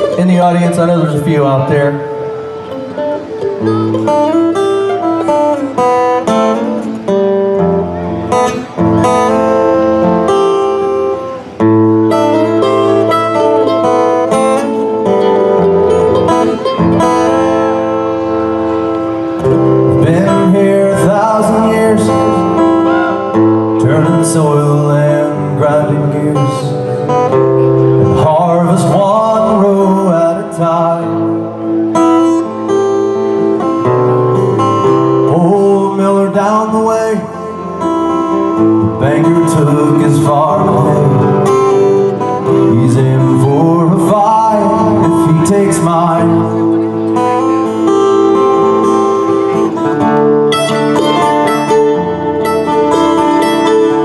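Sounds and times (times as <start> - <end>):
live country band playing: 0.0 - 54.0.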